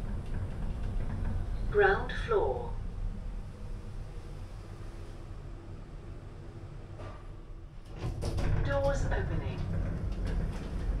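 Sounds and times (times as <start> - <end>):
lift doors sliding open: 7.8 - 11.0.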